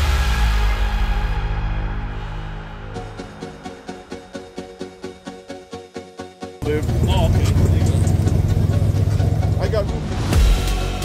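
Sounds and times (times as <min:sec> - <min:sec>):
loud music with heavy bass: 0:00.0 - 0:04.0, 0:06.6 - 0:11.0.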